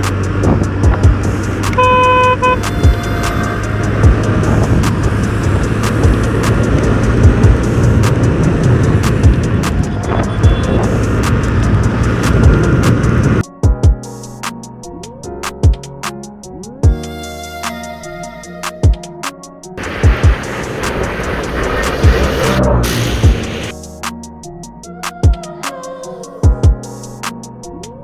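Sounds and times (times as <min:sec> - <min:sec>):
background music with a beat: 0:00.0 - 0:22.5, 0:23.1 - 0:28.0
wind noise while riding: 0:00.2 - 0:13.4
vehicle horn honking: 0:01.8 - 0:03.2, 0:09.9 - 0:10.9
scooter engine at full throttle: 0:03.8 - 0:13.4.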